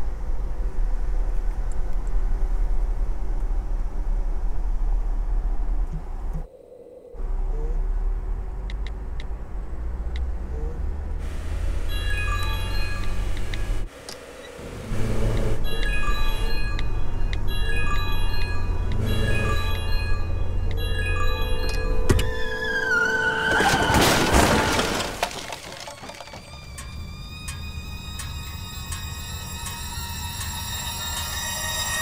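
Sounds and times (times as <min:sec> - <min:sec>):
low road rumble in car: 0:00.0 - 0:06.5, 0:07.2 - 0:22.7
light chiming music: 0:11.9 - 0:13.5, 0:15.6 - 0:22.9, 0:26.5 - 0:32.0.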